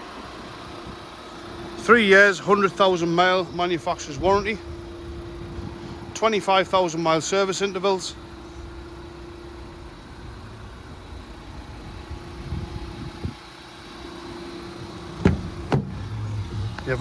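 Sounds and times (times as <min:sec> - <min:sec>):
outdoor background noise: 0:00.0 - 0:17.0
steady low hum: 0:00.0 - 0:17.0.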